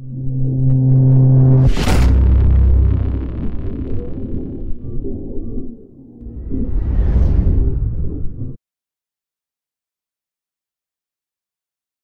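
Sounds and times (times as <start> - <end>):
deep rumbling drone: 0.0 - 8.6.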